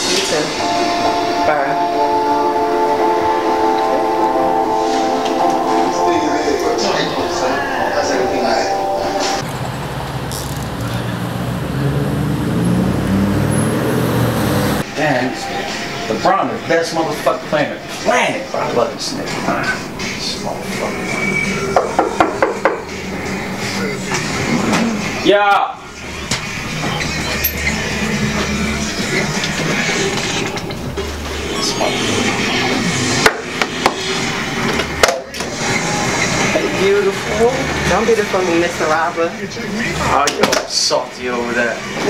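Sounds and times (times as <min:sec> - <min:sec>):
vehicle engine passing: 0:09.4 - 0:14.9
background music with deep bass: 0:11.0 - 0:40.3.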